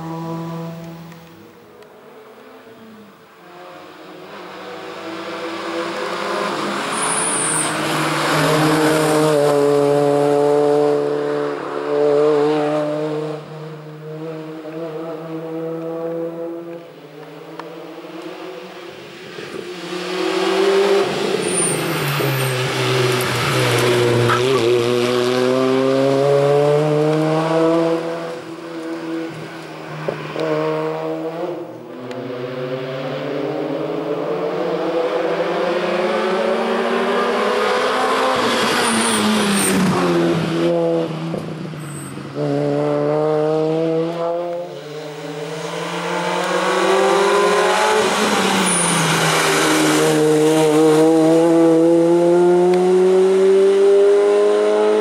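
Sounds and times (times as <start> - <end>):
race car engine at full throttle: 0.0 - 55.0.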